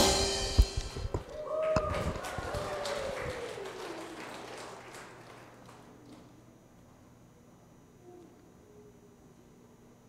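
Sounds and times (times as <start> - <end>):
faint drawn-out voice: 7.9 - 9.9.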